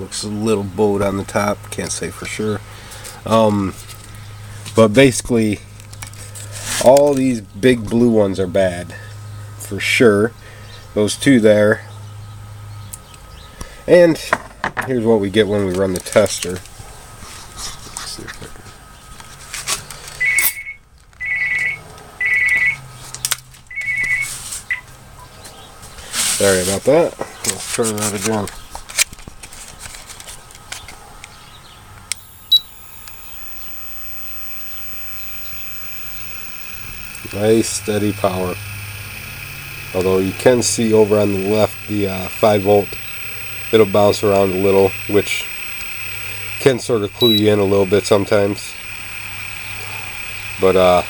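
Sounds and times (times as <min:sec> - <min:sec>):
low steady hum: 0:32.1 - 0:51.0
short high beep: 0:32.1 - 0:51.0
man speaking: 0:39.9 - 0:43.0, 0:43.6 - 0:45.5, 0:46.5 - 0:48.8, 0:50.6 - 0:51.0.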